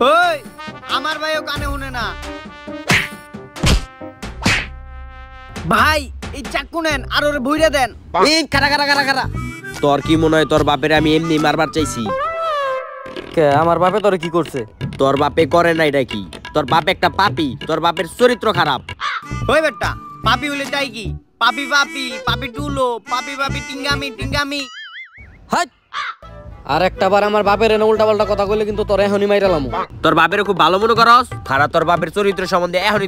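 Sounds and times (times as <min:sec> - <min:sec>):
background music: 0:00.0 - 0:24.7, 0:26.2 - 0:33.0
sharp whack sound effects: 0:02.8 - 0:04.8
short arched cries: 0:09.3 - 0:13.2
man's voice: 0:19.4 - 0:24.7.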